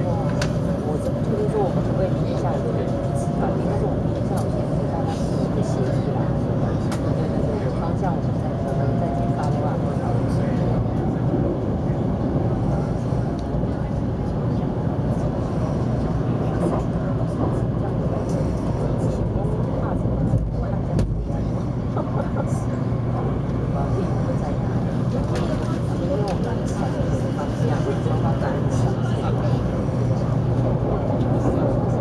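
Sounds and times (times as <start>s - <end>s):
people's voices: 0.0s - 32.0s
train running rumble inside cabin: 0.0s - 32.0s.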